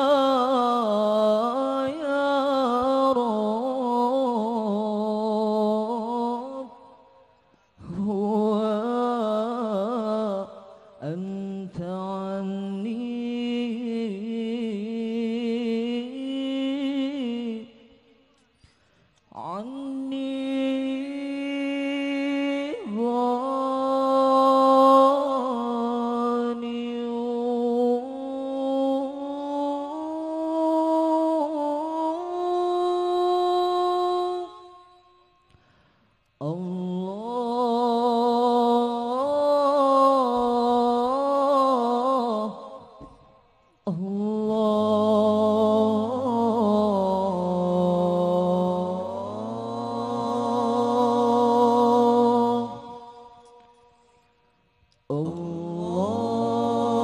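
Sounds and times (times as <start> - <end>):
man singing a chant: 0.0 - 6.9, 7.8 - 18.0, 19.3 - 34.7, 36.4 - 43.1, 43.8 - 53.5, 55.0 - 57.0.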